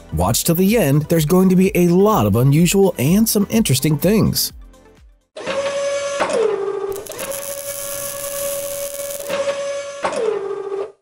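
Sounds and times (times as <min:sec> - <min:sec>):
mechanical whirring hum: 0:05.4 - 0:10.6.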